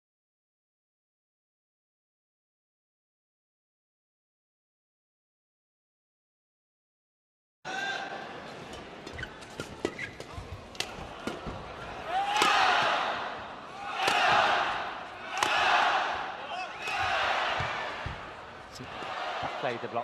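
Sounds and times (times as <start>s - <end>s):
rackets hitting shuttlecock: 9.2s - 11.7s, 12.3s - 13.3s, 14.0s - 18.2s
crowd cheering: 10.8s - 20.0s.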